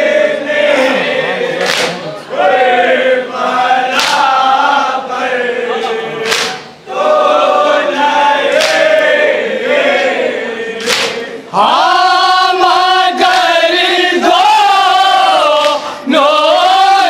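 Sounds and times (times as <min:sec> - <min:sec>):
men chanting in unison: 0:00.0 - 0:17.0
sharp slaps: 0:01.6 - 0:02.1, 0:03.9 - 0:04.4, 0:06.2 - 0:06.8, 0:08.5 - 0:09.1, 0:10.8 - 0:11.3, 0:15.5 - 0:15.9.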